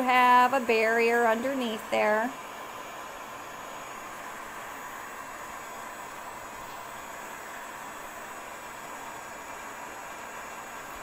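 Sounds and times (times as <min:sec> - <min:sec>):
heat gun hissing: 0:00.0 - 0:11.0.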